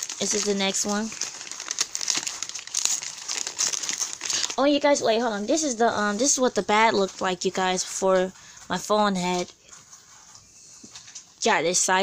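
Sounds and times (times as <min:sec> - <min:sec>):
gift wrapping crinkling: 0:00.0 - 0:07.8.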